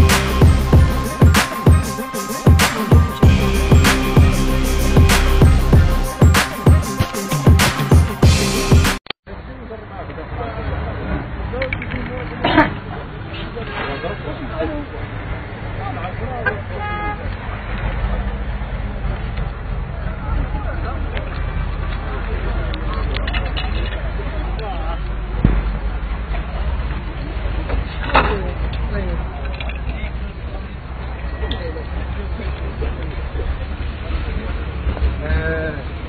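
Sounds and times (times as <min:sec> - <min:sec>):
crowd voices: 0:00.0 - 0:36.0
car horn toot: 0:16.4 - 0:17.2
sharp knock: 0:25.4 - 0:25.7.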